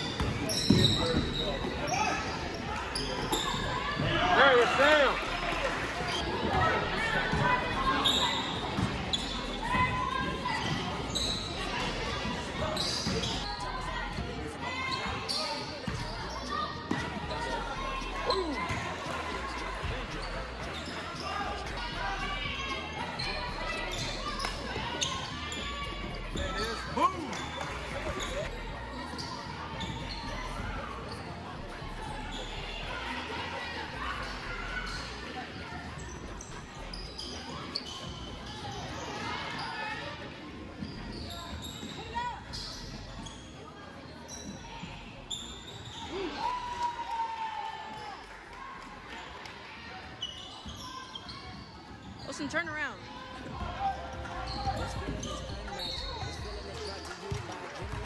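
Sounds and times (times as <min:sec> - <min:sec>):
basketball bouncing on court: 0:00.2 - 0:01.8.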